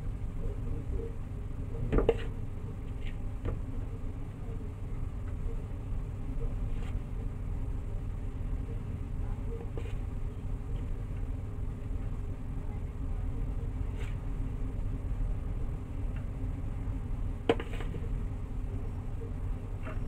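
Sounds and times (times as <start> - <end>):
low background rumble: 0.0 - 20.0.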